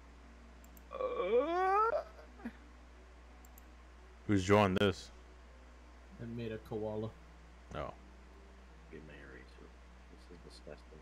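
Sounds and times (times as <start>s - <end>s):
voice-like wail rising in pitch: 0.9s - 2.3s.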